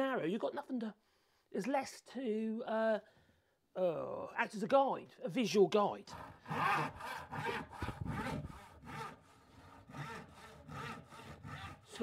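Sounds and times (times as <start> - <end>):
hand saw cutting wood: 6.1 - 12.0.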